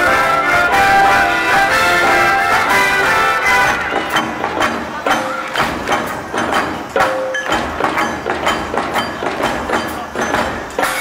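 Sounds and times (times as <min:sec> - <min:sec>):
brass: 0:00.0 - 0:04.4
scattered pitched notes: 0:00.0 - 0:07.5
sharp percussion knocks: 0:03.5 - 0:11.0.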